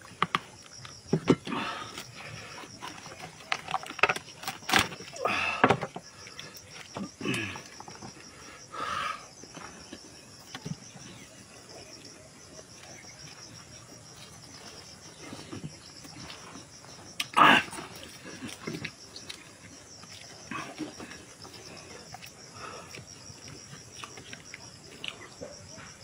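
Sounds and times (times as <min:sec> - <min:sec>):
man chewing meat: 0:00.0 - 0:05.1, 0:06.0 - 0:26.0
insects chirping: 0:00.0 - 0:26.0.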